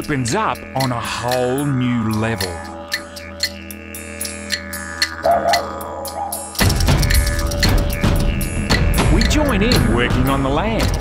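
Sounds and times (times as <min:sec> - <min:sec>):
ticking percussion: 0:00.0 - 0:11.0
wavering tone: 0:00.7 - 0:08.6
low drone: 0:00.7 - 0:09.1
music with drums: 0:06.6 - 0:11.0.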